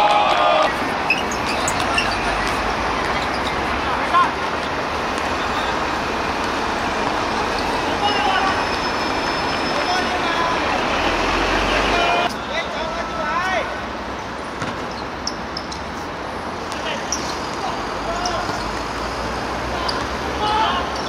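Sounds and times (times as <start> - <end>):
players shouting: 0.0 - 13.9, 19.5 - 21.0
city traffic noise: 0.0 - 21.0.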